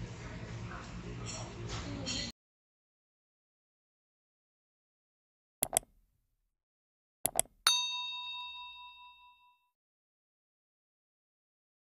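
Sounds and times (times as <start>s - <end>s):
double mouse click: 5.6s - 5.9s, 7.3s - 7.6s
bright bell ding: 7.7s - 9.7s.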